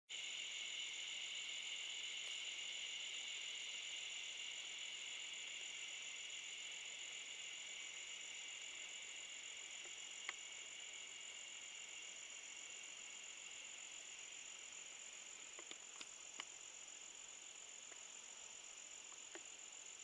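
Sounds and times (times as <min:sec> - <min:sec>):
crickets chirping: 0:00.1 - 0:20.0.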